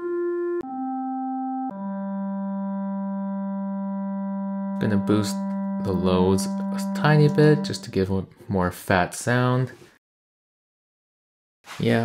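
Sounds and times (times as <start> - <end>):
clarinet low note held: 0.0 - 8.1.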